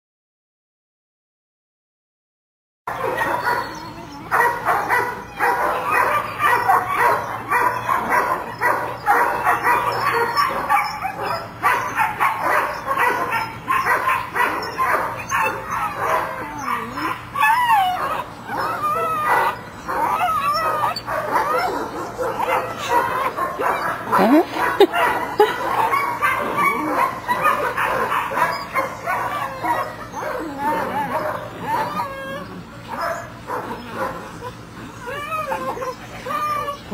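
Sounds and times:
puppies barking and yipping: 0:02.9 - 0:36.9
puppy whining: 0:03.0 - 0:36.9.

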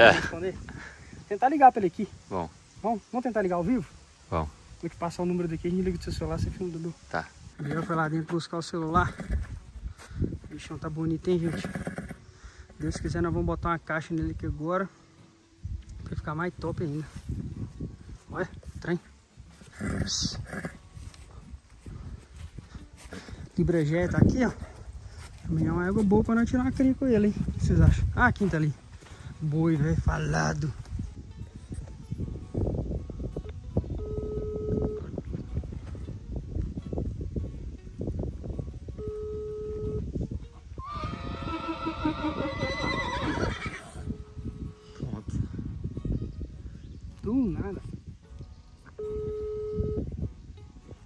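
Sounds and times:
horse whinnying: 0:07.6 - 0:08.1, 0:09.1 - 0:09.5, 0:11.4 - 0:12.2, 0:19.7 - 0:20.8, 0:40.8 - 0:44.1
horse snorting: 0:07.6 - 0:08.2, 0:09.1 - 0:09.4, 0:11.4 - 0:12.2, 0:19.7 - 0:20.8
telephone ringback beeps: 0:34.0 - 0:35.0, 0:39.0 - 0:40.0, 0:49.0 - 0:50.1.

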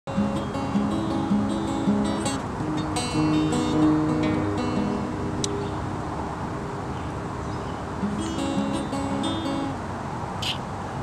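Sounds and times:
acoustic guitar playing: 0:00.1 - 0:05.8, 0:08.0 - 0:09.9
steady background hiss: 0:00.1 - 0:11.0.

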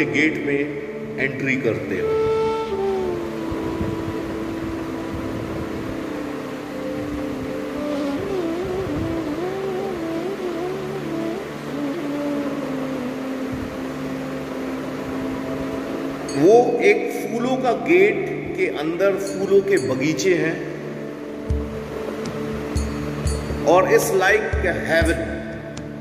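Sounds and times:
soft instrumental background music: 0:00.0 - 0:26.0.

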